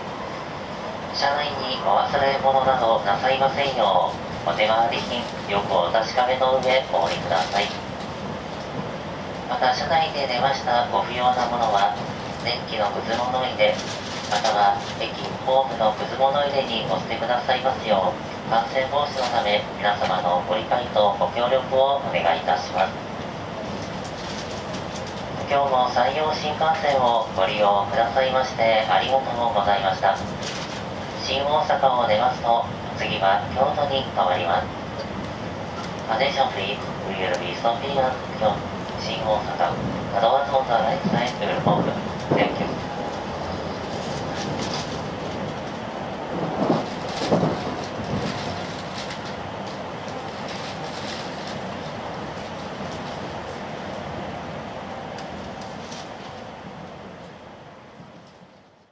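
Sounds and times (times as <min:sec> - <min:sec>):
train running noise in cabin: 0:00.0 - 0:58.9.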